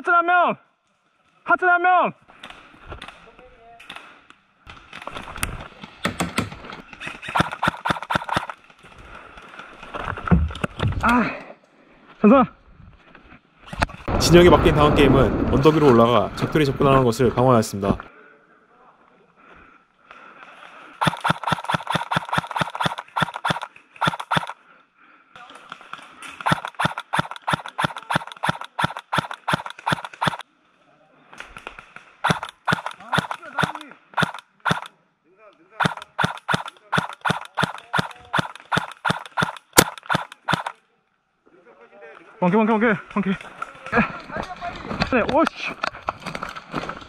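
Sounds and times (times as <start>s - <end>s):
sharp crack: 7.2s - 8.7s, 21.0s - 24.6s, 25.7s - 30.4s, 31.4s - 34.9s, 35.8s - 40.8s
airsoft guns firing single shots: 7.3s - 8.5s, 21.0s - 24.5s, 32.2s - 34.9s, 35.8s - 40.8s.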